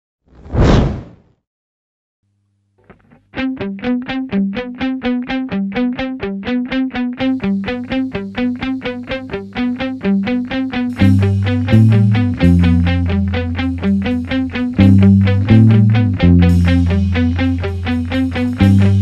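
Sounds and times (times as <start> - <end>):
swoosh sound effect: 0.4 - 1.2.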